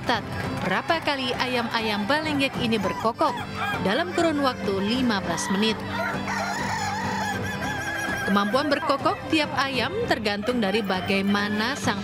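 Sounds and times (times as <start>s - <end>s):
rooster crowing: 2.7s - 4.3s, 5.6s - 8.6s.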